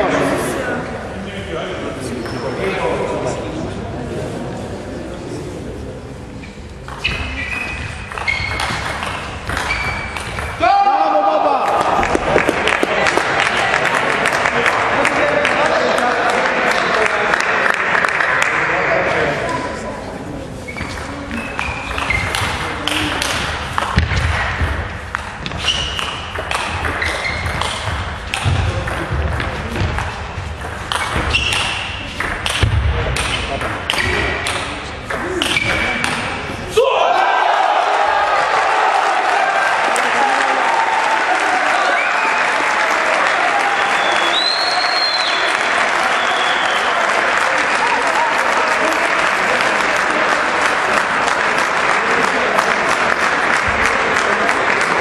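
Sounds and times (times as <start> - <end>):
shoes squeaking on floor: 6.9 - 10.5, 20.6 - 22.5, 25.4 - 26.2, 26.9 - 27.9, 31.1 - 32.0
person shouting: 10.6 - 11.7.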